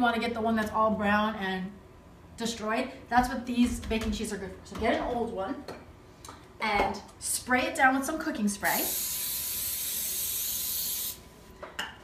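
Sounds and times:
aerosol spray hissing: 0:08.6 - 0:11.2.

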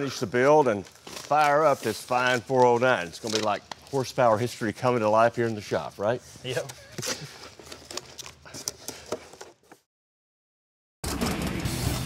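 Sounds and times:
paper and cardboard crinkling: 0:00.0 - 0:09.8.

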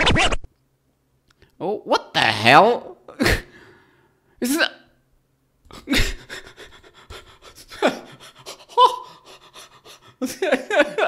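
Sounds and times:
man laughing in panting gasps: 0:05.7 - 0:11.0.

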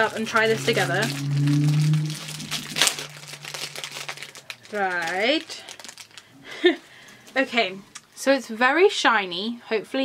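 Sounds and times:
lollipop wrapper crinkling: 0:00.0 - 0:06.3.

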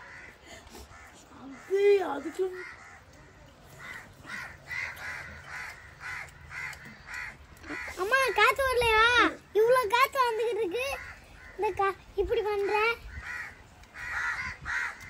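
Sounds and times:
crows cawing: 0:00.0 - 0:12.0, 0:12.6 - 0:15.0.

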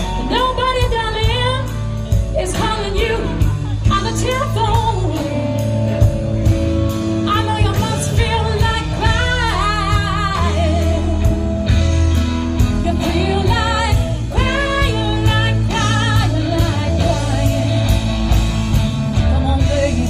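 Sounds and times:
woman singing with vibrato: 0:00.0 - 0:06.2, 0:07.2 - 0:11.5, 0:12.7 - 0:18.1, 0:19.1 - 0:20.0
electric bass: 0:00.0 - 0:20.0
electric guitar: 0:00.0 - 0:20.0.

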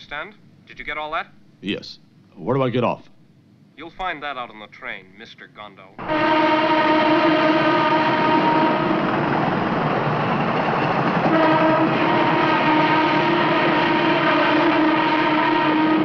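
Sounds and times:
train horn blasts: 0:06.0 - 0:09.7, 0:11.2 - 0:16.0
train rushing: 0:06.0 - 0:16.0.

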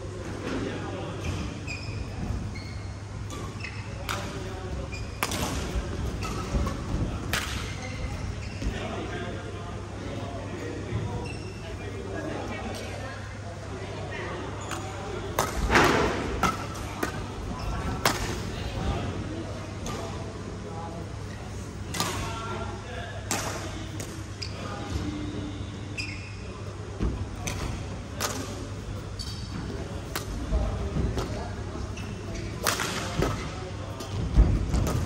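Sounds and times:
rackets hitting shuttlecock: 0:05.2 - 0:07.8, 0:14.8 - 0:17.2, 0:32.6 - 0:33.4.

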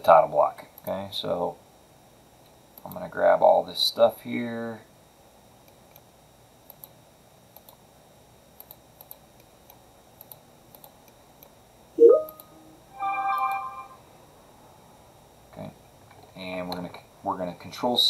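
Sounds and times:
low room hiss: 0:00.0 - 0:18.0
computer mouse clicks: 0:06.7 - 0:07.8, 0:08.6 - 0:11.6
electronic notification chime: 0:12.0 - 0:14.0.

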